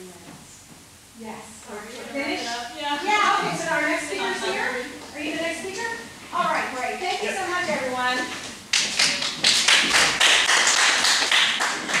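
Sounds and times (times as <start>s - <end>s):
audience applauding: 8.7s - 12.0s.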